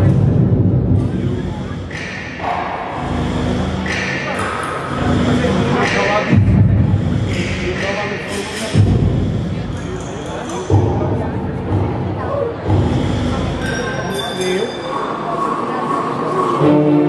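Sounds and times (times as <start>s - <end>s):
backing track over loudspeakers: 0.0s - 17.0s.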